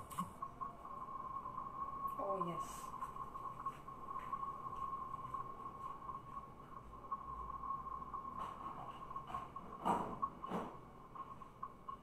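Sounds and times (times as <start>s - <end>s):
high-pitched whine: 0.0s - 12.0s.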